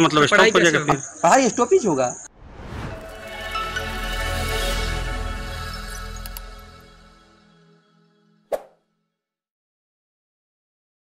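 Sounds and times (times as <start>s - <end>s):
outro music: 2.3s - 8.4s.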